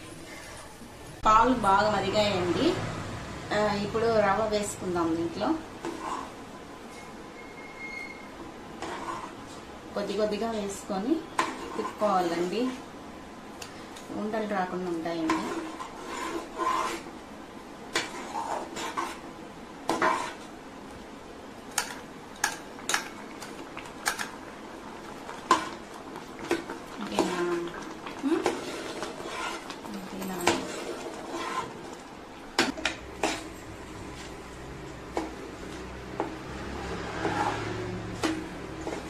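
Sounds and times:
spoon stirring in metal pan: 0:05.0 - 0:12.6, 0:14.8 - 0:17.2, 0:17.8 - 0:20.6, 0:21.7 - 0:39.0.

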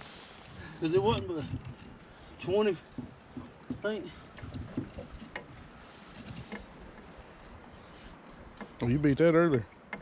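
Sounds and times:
faint knocks: 0:02.8 - 0:05.6.

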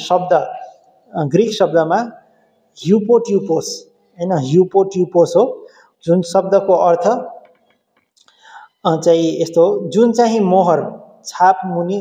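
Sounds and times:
man lecturing into a microphone: 0:00.0 - 0:07.5, 0:08.6 - 0:12.0
soft breathy sound: 0:08.3 - 0:08.8.

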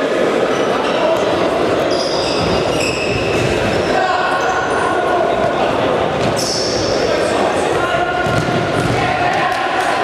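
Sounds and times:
sports hall din: 0:00.0 - 0:10.0
shoes squeaking on floor: 0:01.9 - 0:03.8, 0:06.2 - 0:07.1.

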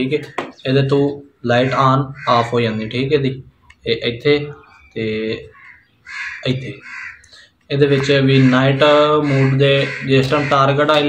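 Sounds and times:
man speaking: 0:00.0 - 0:05.6, 0:06.4 - 0:06.8, 0:07.7 - 0:11.0
harsh bird calls: 0:00.0 - 0:11.0.

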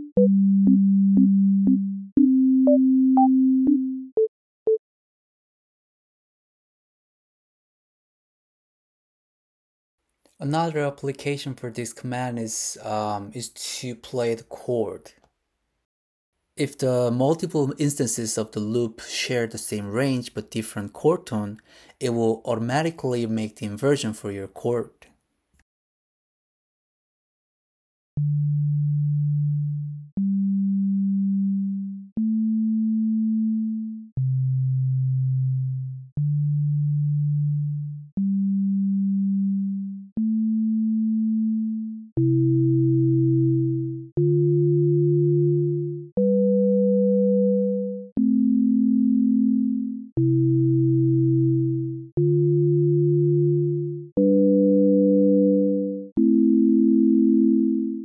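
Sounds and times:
synthesised sine-wave tones: 0:28.3 - 0:58.0.

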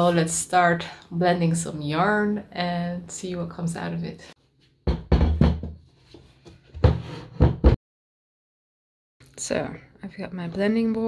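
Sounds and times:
wooden board knocking on table: 0:04.9 - 0:05.8, 0:06.8 - 0:07.8.

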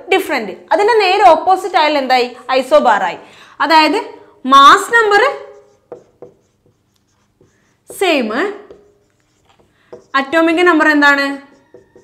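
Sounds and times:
marker writing on whiteboard: 0:04.6 - 0:12.0.

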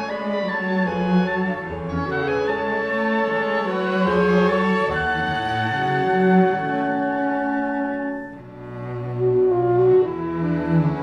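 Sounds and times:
low cello and bass notes: 0:00.0 - 0:11.0
small orchestra playing: 0:00.0 - 0:11.0.

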